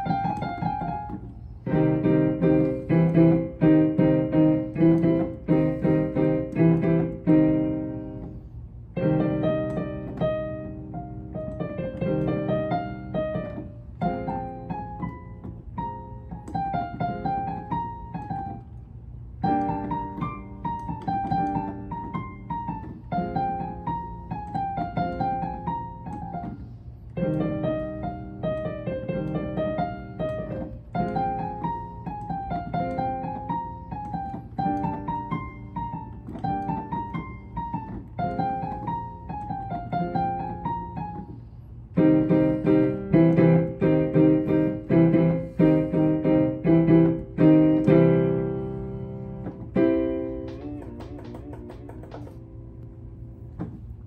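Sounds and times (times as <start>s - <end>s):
digital piano classical piece: 0.0s - 54.0s.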